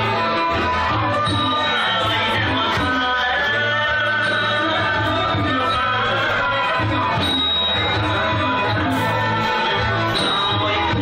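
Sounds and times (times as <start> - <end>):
traditional music ensemble: 0.0 - 11.0.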